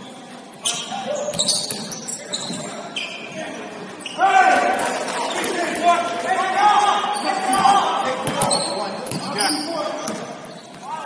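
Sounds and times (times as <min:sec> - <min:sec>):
shoe squeaks: 0:00.0 - 0:04.4, 0:07.1 - 0:11.0
players' voices: 0:00.0 - 0:11.0.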